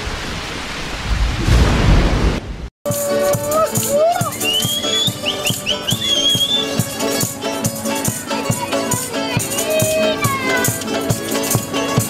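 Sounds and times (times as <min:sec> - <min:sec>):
folk string band strumming: 0:02.9 - 0:12.0
high melody line: 0:02.9 - 0:12.0.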